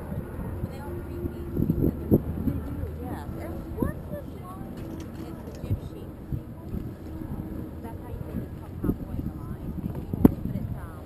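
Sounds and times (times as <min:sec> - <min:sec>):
boat engine hum: 0:00.0 - 0:11.0
muffled voices: 0:00.0 - 0:11.0
wind and water rumble: 0:00.0 - 0:11.0.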